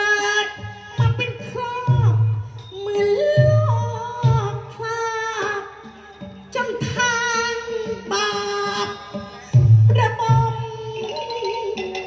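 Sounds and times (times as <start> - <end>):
instrumental accompaniment: 0.0 - 12.0
woman singing: 0.0 - 12.0.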